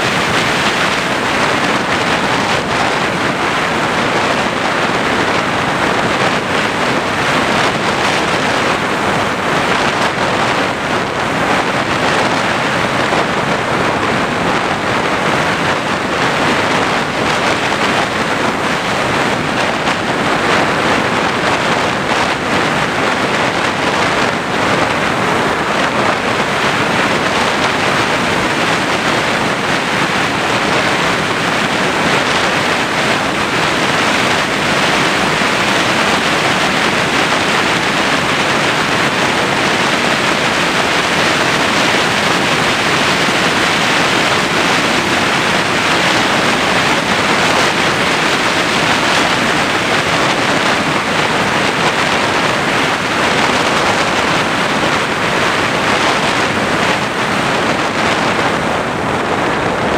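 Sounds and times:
loud rush of airflow: 0.0s - 59.9s.

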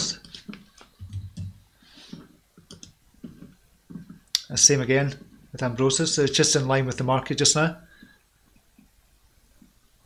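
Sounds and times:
keyboard typing clicks: 2.7s - 3.0s.

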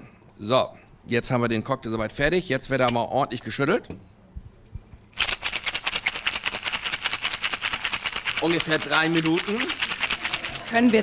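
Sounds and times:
ice rattling in cocktail shaker: 5.2s - 11.0s.

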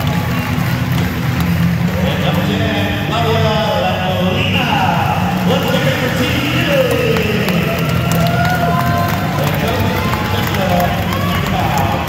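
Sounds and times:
crowd voices: 0.0s - 12.0s
music playing: 0.0s - 12.0s.

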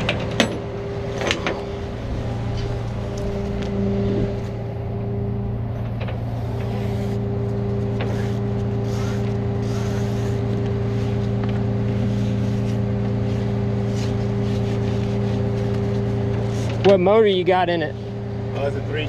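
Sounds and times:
truck engine idling: 0.0s - 19.0s.

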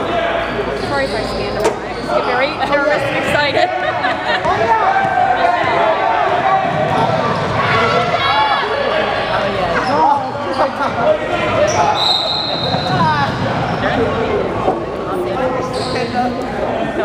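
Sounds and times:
spectators' voices: 0.0s - 17.0s
shoe squeak: 0.4s - 2.5s, 9.7s - 10.9s, 11.6s - 14.0s, 15.6s - 16.4s.

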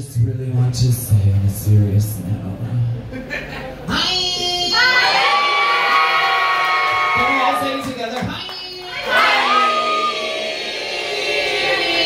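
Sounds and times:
crowd cheering: 4.8s - 12.0s.

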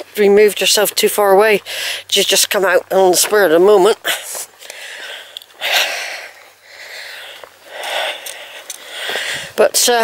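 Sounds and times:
person breathing: 1.7s - 2.1s, 4.1s - 9.6s.

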